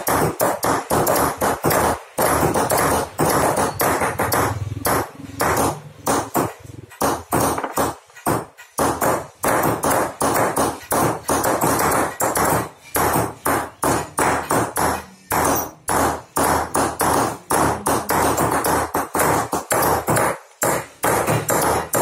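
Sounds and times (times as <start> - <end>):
hammers striking chisels on metal: 0.0 - 22.0.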